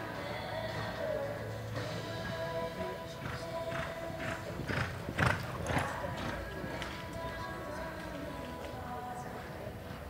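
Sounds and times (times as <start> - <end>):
horse hoofbeats on dirt: 3.2 - 8.8.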